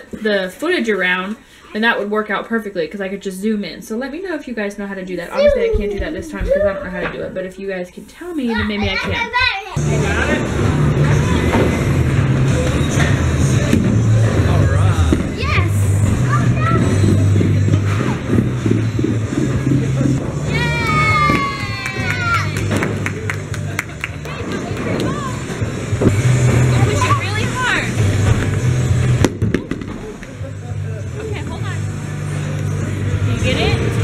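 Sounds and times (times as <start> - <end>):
background music with bass line: 9.8 - 34.0.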